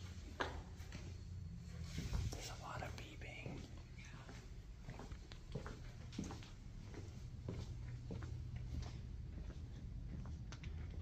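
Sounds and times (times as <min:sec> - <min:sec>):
steady low hum: 0:00.0 - 0:11.0
person whispering: 0:02.3 - 0:04.6.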